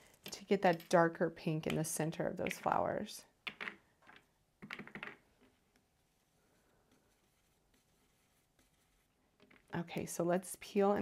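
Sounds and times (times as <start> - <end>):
craft supplies clicking and tapping: 1.6 - 2.8.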